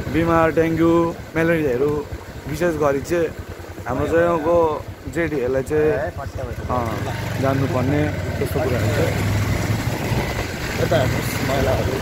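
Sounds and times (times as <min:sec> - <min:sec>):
vehicle engine rumbling: 0:00.0 - 0:12.0.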